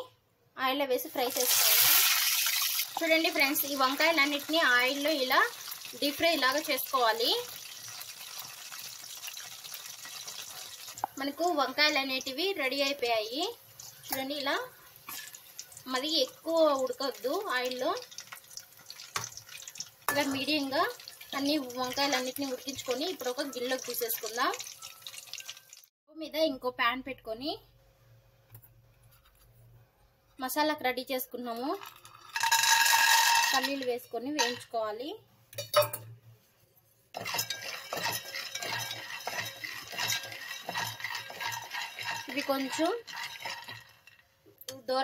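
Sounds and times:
vegetables frying in oil: 1.1 - 25.9, 37.2 - 44.2
peanuts rattling in a metal pan: 1.2 - 14.5, 15.1 - 25.8, 31.6 - 34.6, 37.2 - 44.2
wooden spatula stirring: 37.1 - 44.2.

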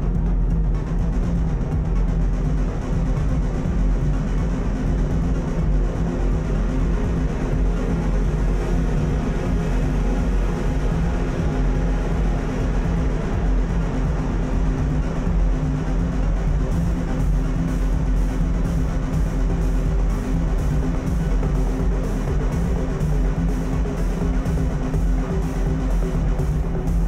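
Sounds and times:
heavy bass drone: 0.0 - 27.0
wall of electronic noise: 0.0 - 27.0.

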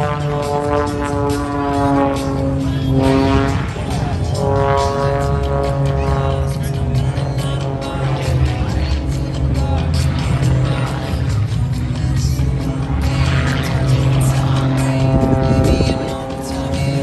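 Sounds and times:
propeller plane engine droning: 0.0 - 17.0.

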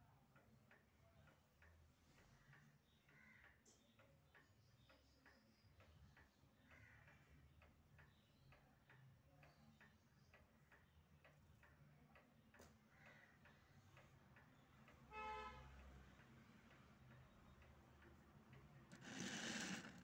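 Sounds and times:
faint regular ticking: 0.0 - 20.0.

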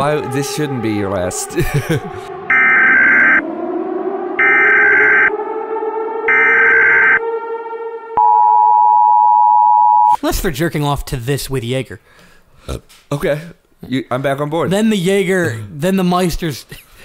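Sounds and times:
low drone: 0.0 - 8.8
two-note attention tone: 0.4 - 9.7.

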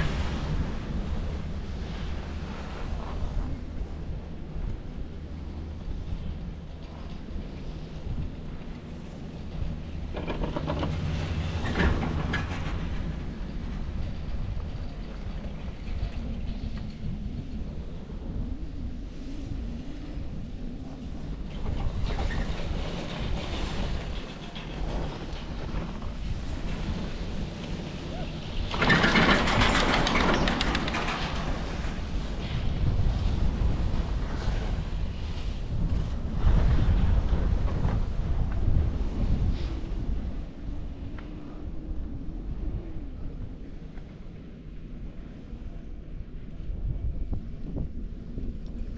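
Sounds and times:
chairlift low rumble: 0.0 - 48.9
wind on microphone: 0.0 - 48.9
chairlift grip rattling: 28.7 - 31.7.

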